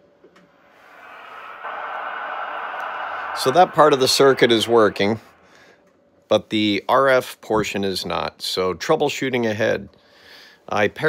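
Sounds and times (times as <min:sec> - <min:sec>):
radio receiver hiss: 0:00.5 - 0:05.7.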